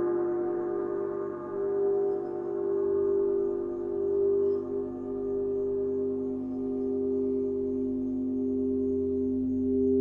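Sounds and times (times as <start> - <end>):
singing bowls ringing: 0.0 - 10.0.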